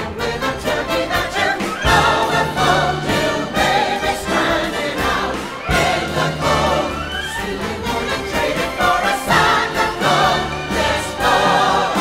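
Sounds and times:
mixed chorus singing: 0.0s - 12.0s
orchestral accompaniment: 0.0s - 12.0s.

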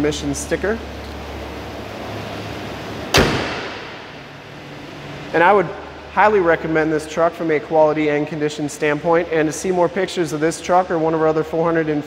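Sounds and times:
car hood slamming shut: 3.1s - 4.1s.

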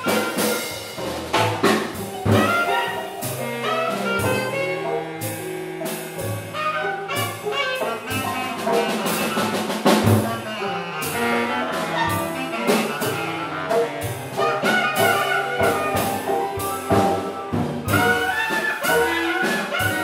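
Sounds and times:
cymbal and drum strikes: 0.0s - 4.7s
jazz band playing blues: 0.0s - 20.0s.

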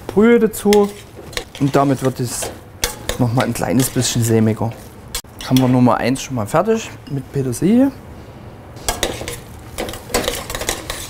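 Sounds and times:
utensil scraping metal pot: 0.6s - 5.7s, 8.8s - 11.0s.

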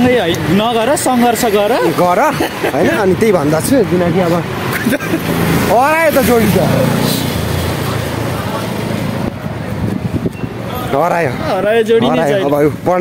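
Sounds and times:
motorbike passing: 0.1s - 11.7s
man calling out: 11.9s - 12.8s.

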